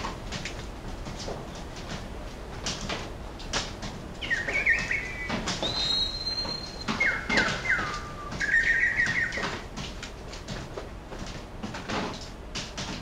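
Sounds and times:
bird-like chirps and whistles: 0:04.2 - 0:09.7.

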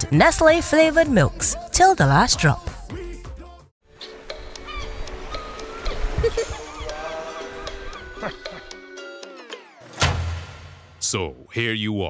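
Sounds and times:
commercial music with sliding tones: 0:00.0 - 0:11.3.

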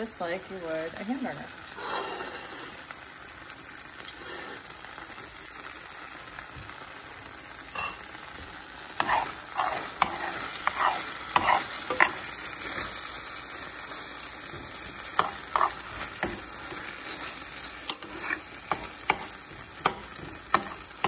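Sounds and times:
meat sizzling in a skillet: 0:00.0 - 0:21.0
spoon scraping and stirring: 0:09.0 - 0:13.0, 0:14.5 - 0:21.0.

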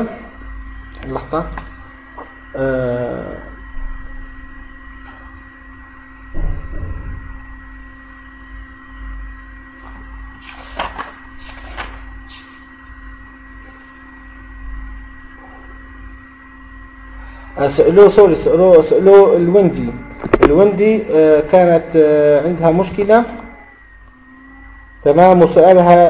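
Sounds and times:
electrical hum with thin whine: 0:00.0 - 0:26.0.

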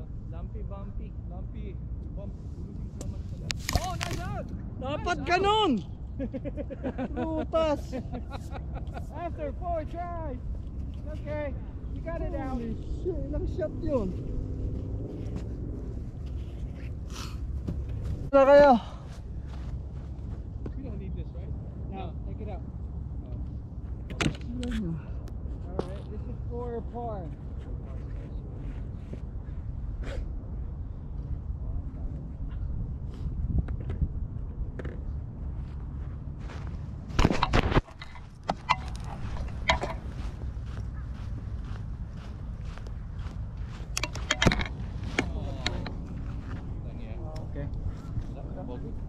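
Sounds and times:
wind rumble on microphone: 0:00.0 - 0:49.0.

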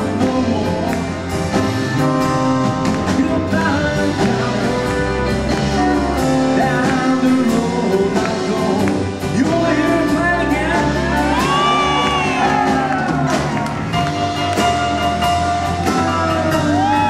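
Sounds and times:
bass guitar: 0:00.0 - 0:17.0
electric and acoustic guitars: 0:00.0 - 0:17.0
grand piano: 0:00.0 - 0:17.0
drum beat: 0:00.1 - 0:17.0.

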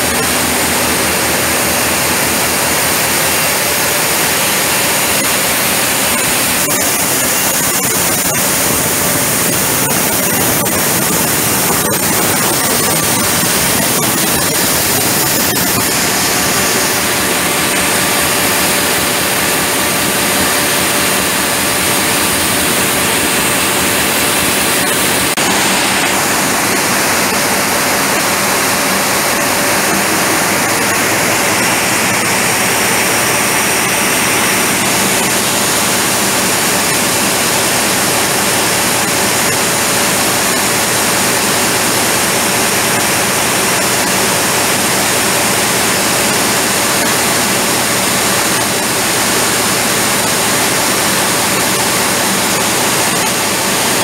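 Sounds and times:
diesel generator engines running: 0:00.0 - 0:54.0.

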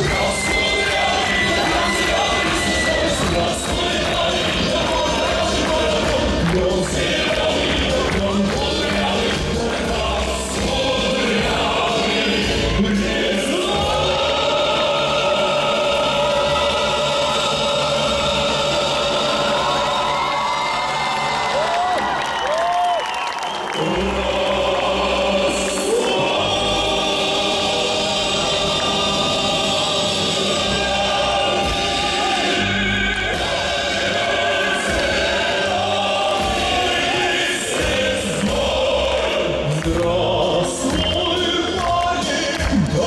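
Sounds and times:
choir-like backing voices: 0:00.0 - 0:43.0
full musical backing: 0:00.0 - 0:43.0
man singing into microphone: 0:39.2 - 0:43.0.

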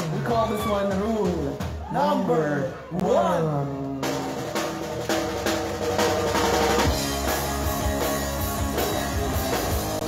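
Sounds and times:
drum kit beat: 0:00.0 - 0:02.4, 0:03.0 - 0:10.0
rock band playing live: 0:00.0 - 0:10.0.

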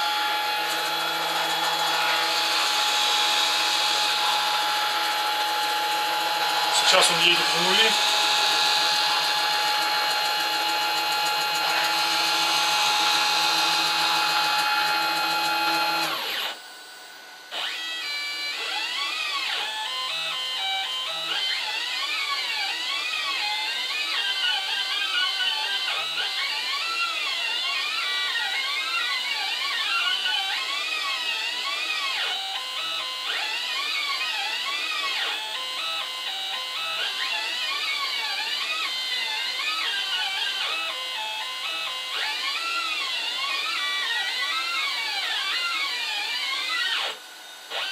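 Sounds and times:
stepper motors playing a melody: 0:00.0 - 0:16.5
machine high whine with hiss: 0:00.0 - 0:47.9.

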